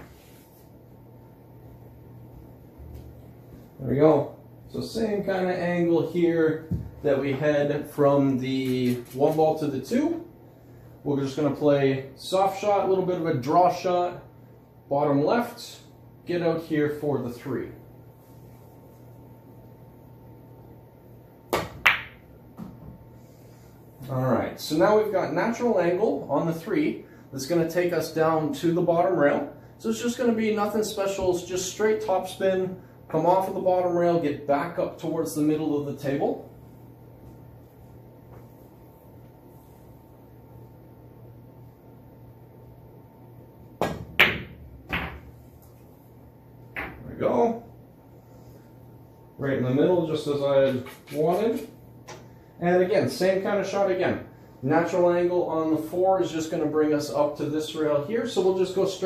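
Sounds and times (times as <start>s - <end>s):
cue tip striking cue ball: 21.6s - 22.2s, 43.8s - 45.4s
pool balls clicking: 21.6s - 22.3s, 43.8s - 45.4s.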